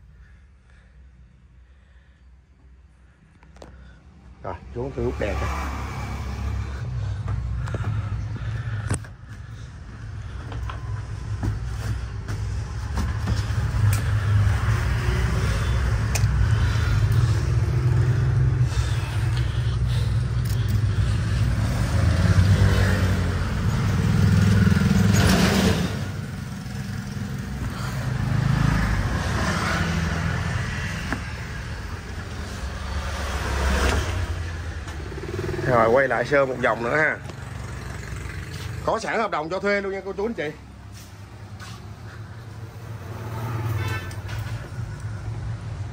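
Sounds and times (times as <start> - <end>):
road traffic: 0.0 - 45.9.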